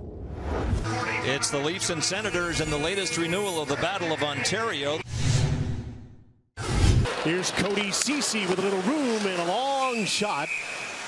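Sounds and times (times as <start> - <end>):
whoosh with low boom: 0.0 - 0.9
arena crowd sound: 7.1 - 11.0.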